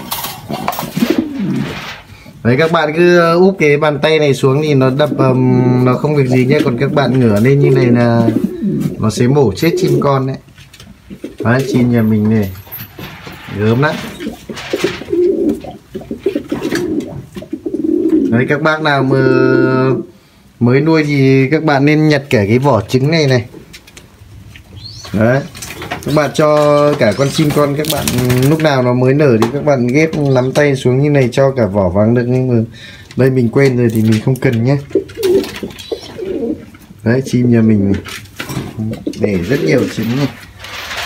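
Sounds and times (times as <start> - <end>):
pigeon cooing: 0.0 - 2.1, 4.7 - 10.4, 11.1 - 12.3, 14.0 - 20.2, 34.9 - 37.6.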